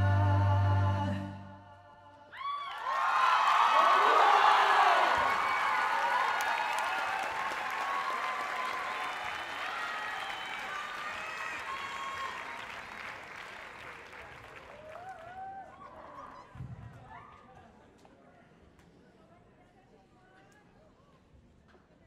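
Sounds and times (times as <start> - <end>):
audience applauding and cheering: 2.3 - 16.4.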